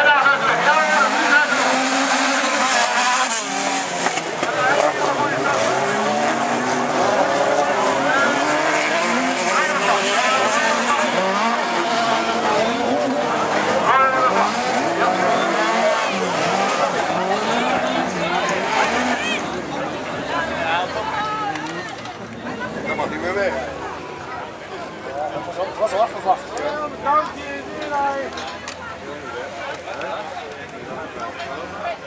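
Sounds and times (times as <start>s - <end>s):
race car engines revving: 0.0s - 32.0s.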